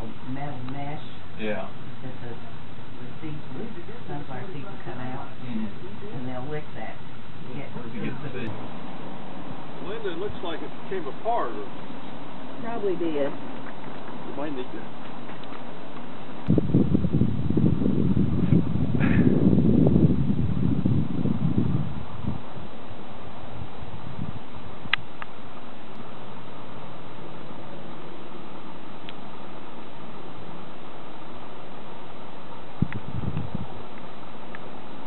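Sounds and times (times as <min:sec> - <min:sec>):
steady hiss: 0:00.0 - 0:16.6
wind buffeting microphone: 0:00.0 - 0:27.3, 0:32.4 - 0:35.0.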